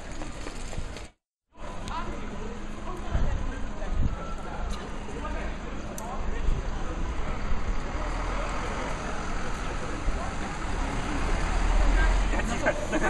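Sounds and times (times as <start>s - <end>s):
faint voices of passers-by: 1.6s - 13.0s.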